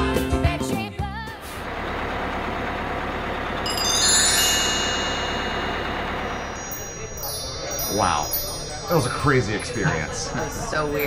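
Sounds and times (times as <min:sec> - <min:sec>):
sparkling chime-like tones: 0:03.6 - 0:11.0.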